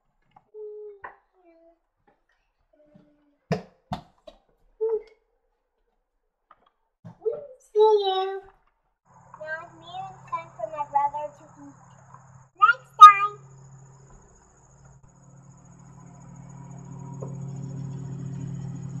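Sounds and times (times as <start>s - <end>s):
young children calling and babbling: 0.6s - 1.8s, 2.8s - 3.3s, 4.8s - 5.1s, 7.1s - 8.5s, 9.4s - 11.9s, 12.6s - 13.4s
low steady hum: 9.2s - 19.0s
child shouting: 9.4s - 11.7s, 12.6s - 13.4s.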